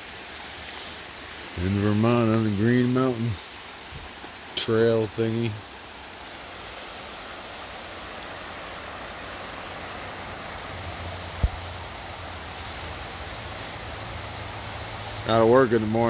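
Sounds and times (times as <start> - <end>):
stream rushing over stones: 0.0 - 16.0
sharp low thump: 11.4 - 11.6.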